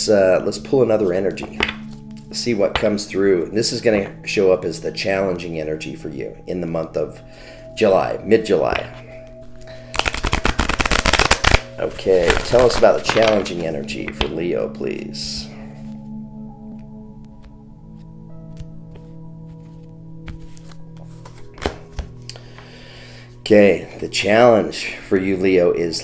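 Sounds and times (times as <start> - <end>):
soft background music: 0.0 - 26.0
cards being shuffled: 1.4 - 2.9, 9.6 - 14.4, 16.8 - 22.6.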